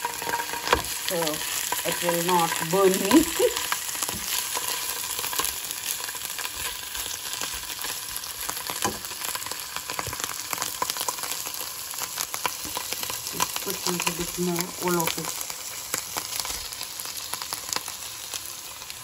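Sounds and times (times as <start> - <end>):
hot oil sizzling in pan: 0.0 - 19.0.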